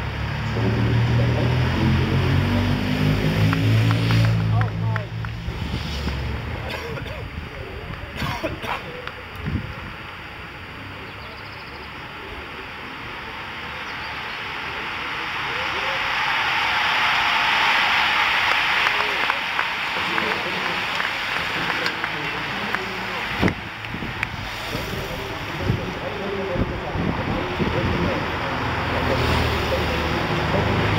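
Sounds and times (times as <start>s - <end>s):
bicycles whooshing past: 0.0s - 6.7s, 12.8s - 30.9s
spectators' voices: 0.0s - 30.9s
wind on microphone: 23.3s - 28.3s.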